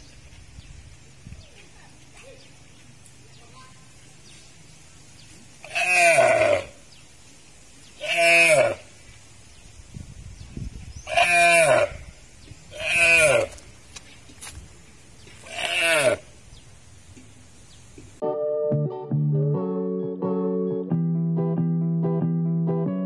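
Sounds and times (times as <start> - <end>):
deer calling: 5.6 - 6.8, 8.0 - 8.9, 11.0 - 12.0, 12.7 - 13.6, 15.4 - 16.3.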